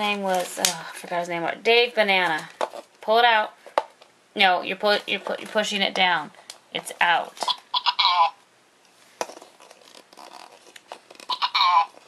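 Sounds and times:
toy handling: 0:02.2 - 0:04.1, 0:04.8 - 0:07.7, 0:09.1 - 0:12.0
toy high-pitched babble: 0:07.4 - 0:08.4, 0:11.3 - 0:12.0.

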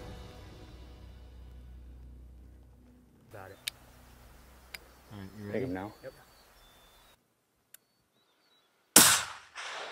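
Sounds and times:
faint click: 0:04.7 - 0:04.9, 0:07.7 - 0:07.9
loud rifle shot: 0:09.0 - 0:09.9.

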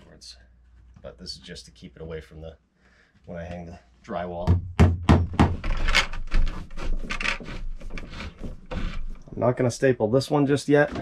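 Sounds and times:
cable scraping in plastic box: 0:05.6 - 0:09.4.

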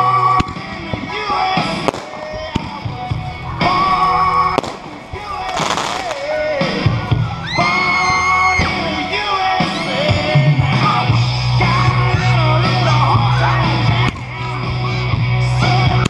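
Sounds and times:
song with singer: 0:00.0 - 0:16.0
crackling hiss: 0:00.4 - 0:07.5
fireworks bangs: 0:00.4 - 0:08.0.

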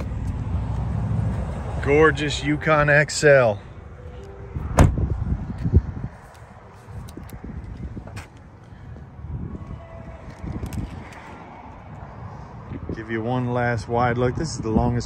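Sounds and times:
wind noise on microphone: 0:04.5 - 0:15.0
sharp thump: 0:04.7 - 0:05.1.

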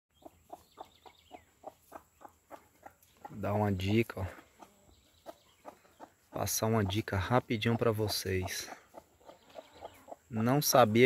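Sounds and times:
hen clucking softly: 0:00.2 - 0:11.0.

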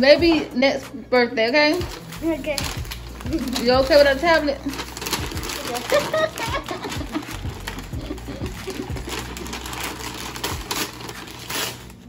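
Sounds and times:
wrapping paper tearing: 0:01.7 - 0:12.0.

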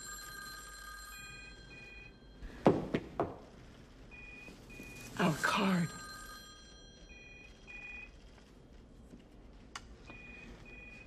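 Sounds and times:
telephone ringing: 0:00.0 - 0:02.6, 0:04.1 - 0:08.3.

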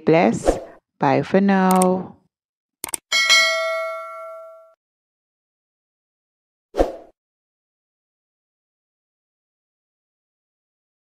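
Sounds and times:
quick clicks: 0:01.7 - 0:01.9, 0:02.8 - 0:03.1
bright bell ding: 0:03.1 - 0:04.8.

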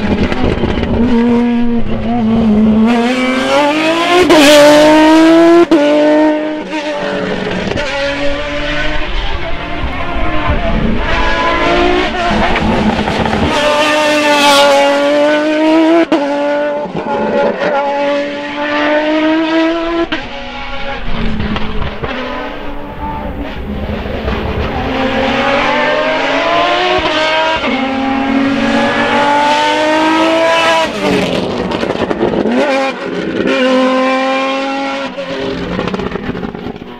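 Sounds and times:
race car engine at high revs: 0:00.0 - 0:36.9.

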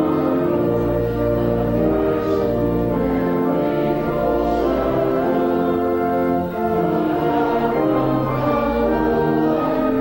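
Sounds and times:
church organ chords: 0:00.0 - 0:10.0
congregation singing a hymn: 0:00.0 - 0:10.0.

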